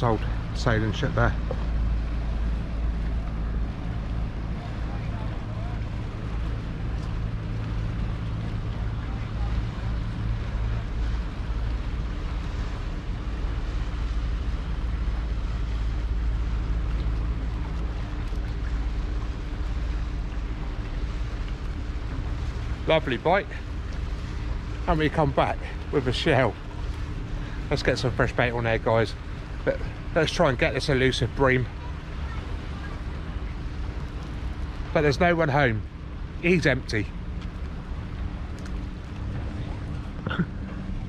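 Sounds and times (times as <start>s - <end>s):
boat engine humming: 0.0s - 41.0s.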